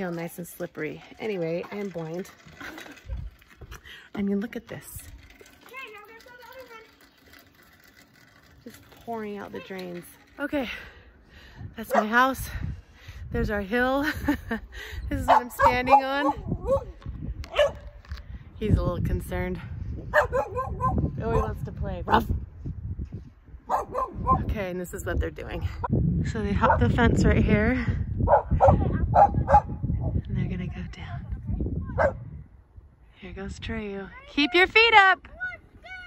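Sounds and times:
low outdoor background: 0.0s - 36.0s
dog barking: 11.9s - 12.2s, 15.3s - 16.9s, 17.5s - 17.8s, 20.1s - 21.5s, 23.7s - 24.5s, 28.3s - 29.8s, 32.0s - 32.2s.

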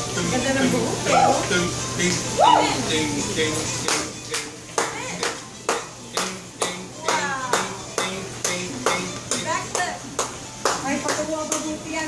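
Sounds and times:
hands clapping a steady beat: 3.8s - 11.8s.

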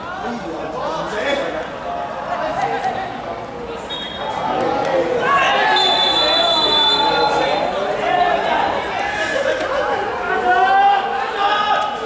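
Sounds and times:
players shouting: 3.8s - 12.0s
referee's whistle: 3.9s - 4.4s, 5.6s - 7.7s.

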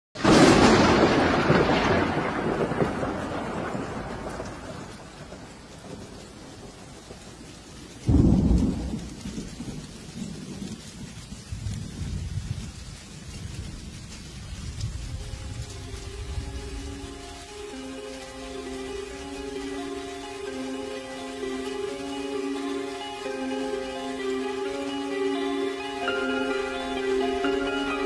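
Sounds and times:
steady rain: 0.2s - 28.0s
thunder rolling: 0.2s - 28.0s.

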